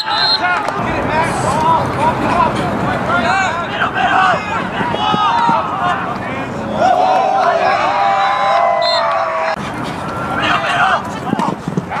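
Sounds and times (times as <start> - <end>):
people shouting: 0.0 - 9.6.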